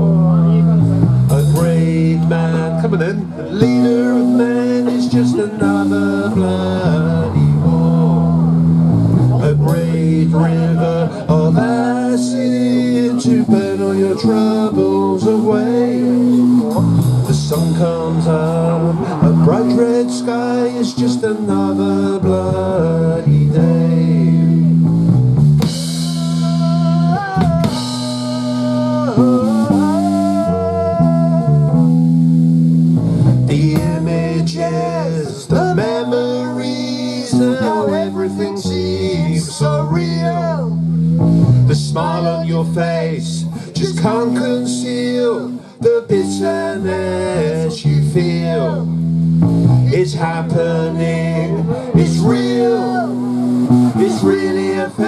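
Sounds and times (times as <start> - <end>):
male lead vocal: 0.0 - 24.9, 25.6 - 32.1, 33.4 - 49.1, 49.7 - 55.0
drums: 0.0 - 46.6, 47.2 - 55.0
electric bass: 0.0 - 55.0
electric guitar: 0.0 - 55.0.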